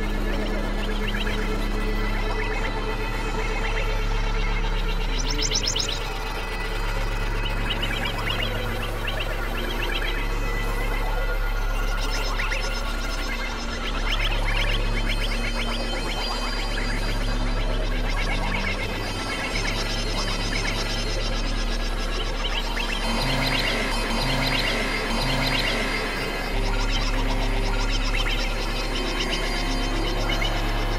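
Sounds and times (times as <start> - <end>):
low synthesizer drone: 0.0 - 30.9.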